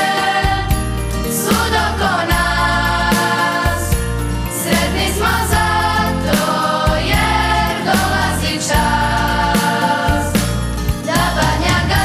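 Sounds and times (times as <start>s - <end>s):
children's choir singing: 0.0s - 10.4s, 11.0s - 12.0s
instrumental backing with bass: 0.0s - 12.0s.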